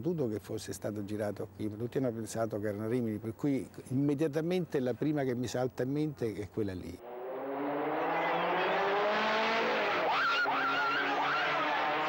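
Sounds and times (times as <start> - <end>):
higher wavering sound: 7.0 - 10.4
race car engine passing: 7.0 - 12.0.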